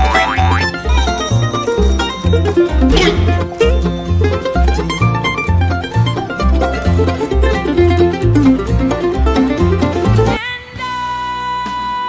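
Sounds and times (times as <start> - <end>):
upbeat plucked-string music: 0.0 - 10.4.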